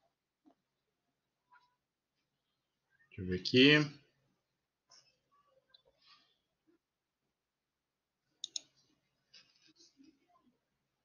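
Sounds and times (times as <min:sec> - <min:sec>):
computer mouse clicks: 0:08.4 - 0:08.8.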